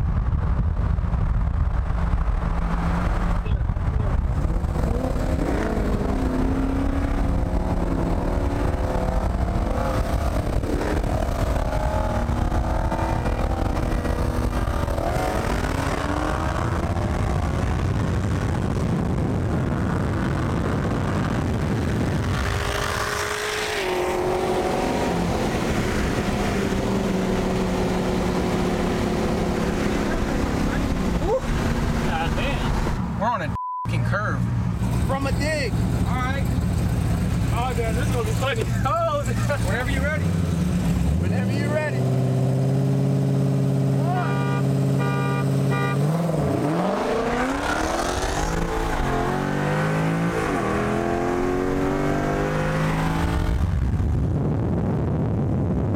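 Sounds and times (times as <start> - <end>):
muscle-car engines droning: 0.2 - 54.2.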